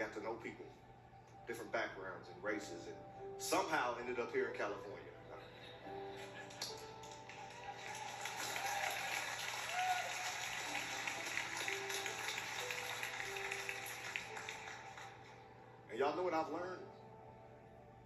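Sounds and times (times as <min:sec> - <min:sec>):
congregation applause: 0:06.1 - 0:15.4.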